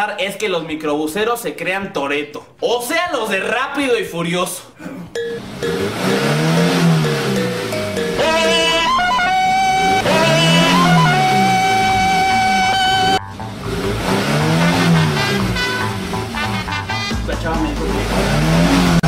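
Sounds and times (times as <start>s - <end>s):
car engine revving: 5.3s - 17.0s, 17.6s - 19.0s
music: 6.8s - 19.0s
tyre squeal: 8.2s - 13.2s.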